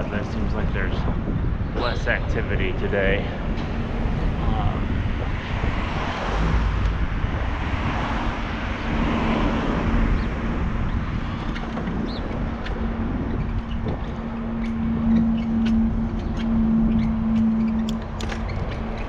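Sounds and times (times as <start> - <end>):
bicycle road noise on pavement: 0.0 - 19.0
steady low hum: 0.0 - 19.0
wind: 0.0 - 19.0.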